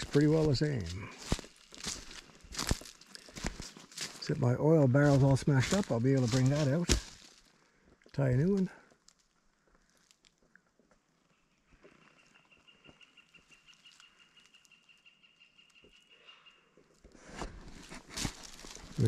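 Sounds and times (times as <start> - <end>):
rustling and crunching: 0.0 - 7.6, 17.0 - 19.0
woodpecker calling faintly: 11.1 - 17.1.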